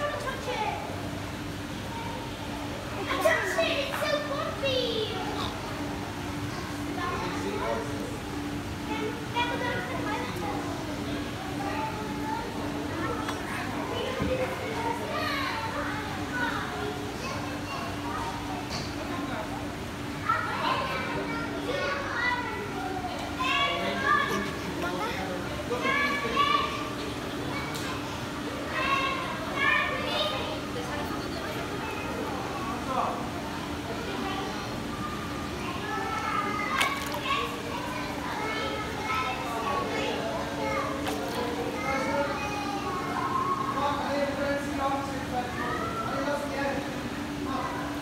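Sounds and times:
crowd chatter: 0:00.0 - 0:48.0
excited children's voices: 0:00.0 - 0:48.0
steady low hum: 0:00.0 - 0:48.0.

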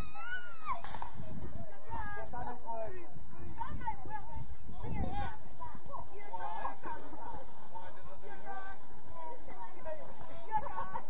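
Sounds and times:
wind rumble on microphone: 0:00.0 - 0:06.3.

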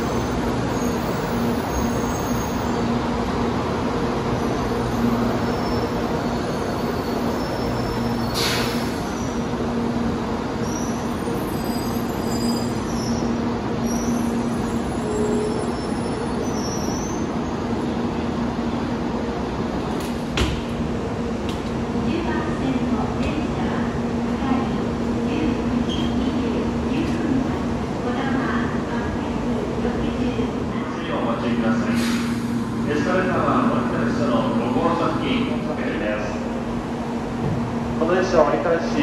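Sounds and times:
train humming low tone: 0:00.0 - 0:39.0.

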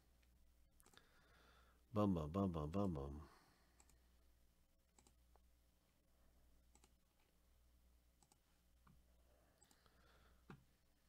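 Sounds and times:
faint computer mouse clicks: 0:06.7 - 0:07.0.

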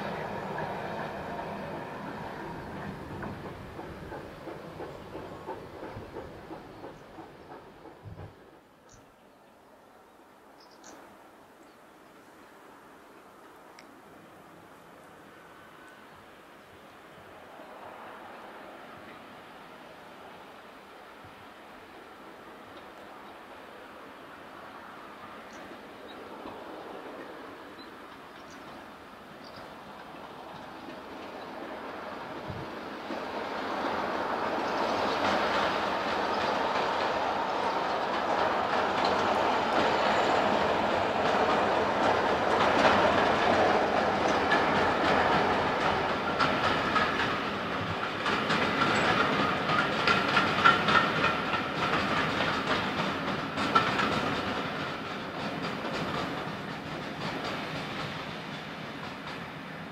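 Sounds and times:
train wheels clattering over rail joints: 0:00.0 - 0:08.7, 0:26.4 - 0:59.9
diesel locomotive engine: 0:00.0 - 0:09.1, 0:14.8 - 0:59.9.

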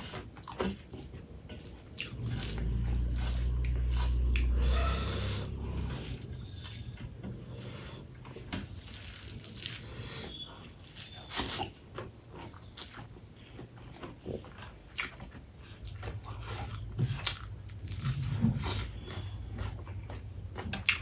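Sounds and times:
wet chewing smacks: 0:00.0 - 0:21.0
fingers squeezing rice: 0:07.7 - 0:11.7.

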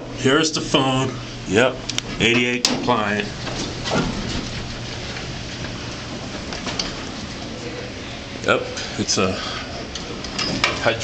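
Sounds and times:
elevator humming and whirring: 0:00.0 - 0:11.0.

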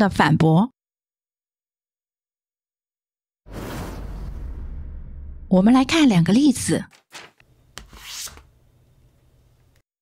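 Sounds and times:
swish sound effects: 0:03.5 - 0:05.5.

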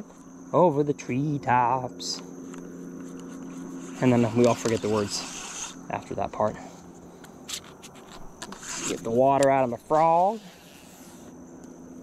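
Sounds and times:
high insect buzz: 0:00.0 - 0:12.0.

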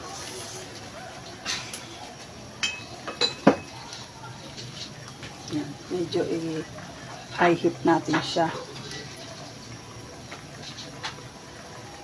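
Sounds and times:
utensil clinking on frying pan: 0:02.6 - 0:03.9.

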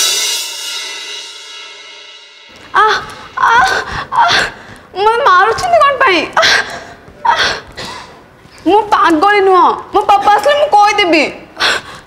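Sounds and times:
woman wailing: 0:02.7 - 0:04.6
woman sobbing gasps: 0:02.8 - 0:04.9.

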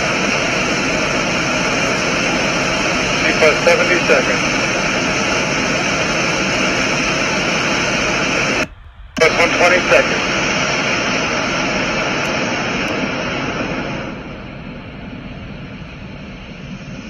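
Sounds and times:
rocket booster roaring: 0:02.0 - 0:17.0.

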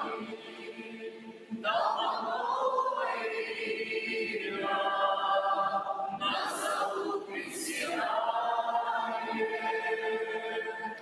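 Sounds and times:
choir and congregation singing a hymn: 0:00.0 - 0:11.0.

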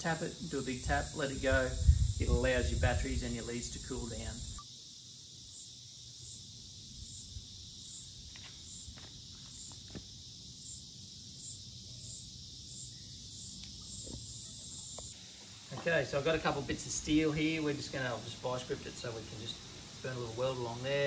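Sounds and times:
high-pitched insect chirp: 0:00.0 - 0:21.0
steady hiss: 0:00.0 - 0:21.0.

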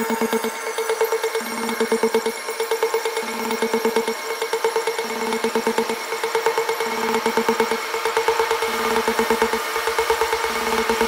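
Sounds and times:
techno with held synth tone: 0:00.0 - 0:11.0.

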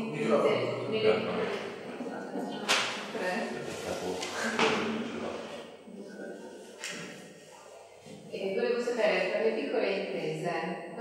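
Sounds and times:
indistinct speech: 0:00.0 - 0:06.6.

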